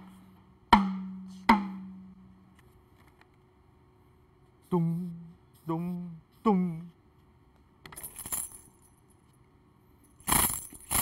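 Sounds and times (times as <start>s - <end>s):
tambourine shaking: 8.0s - 9.1s, 10.1s - 11.0s.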